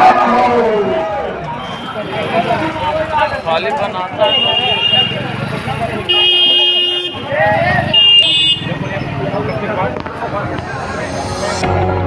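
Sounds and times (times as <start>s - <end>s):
street crowd voices: 0.0s - 12.0s
vehicle horns honking: 4.1s - 8.8s.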